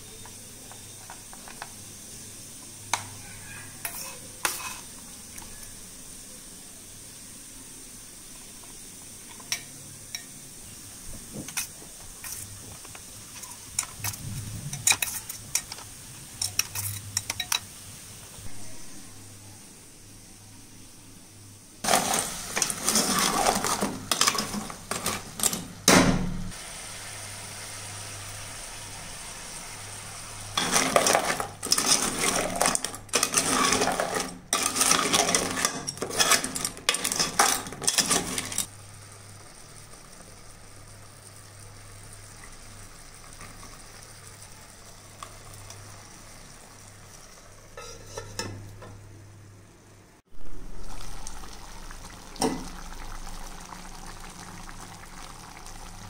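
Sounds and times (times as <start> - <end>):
metal spoon scraping a pot: 3.8 - 4.9, 13.4 - 15.8, 16.4 - 17.6, 21.9 - 25.7, 30.6 - 38.7, 47.7 - 48.6
spoon clinking against pot: 47.8 - 48.9.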